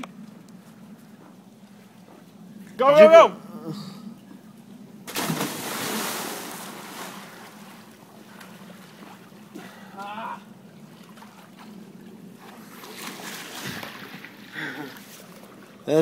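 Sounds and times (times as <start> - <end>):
churning water: 0.0 - 16.0
loud splash into pool: 5.1 - 7.4
person shouting: 9.9 - 10.5.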